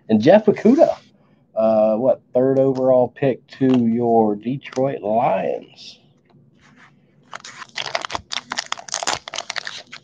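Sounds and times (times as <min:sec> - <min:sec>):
plastic wrapper crinkling and tearing: 0:07.2 - 0:10.0.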